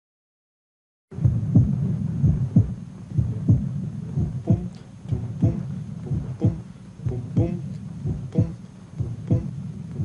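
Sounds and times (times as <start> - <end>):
heartbeat through stethoscope: 1.1 - 10.0
low hum: 1.1 - 10.0.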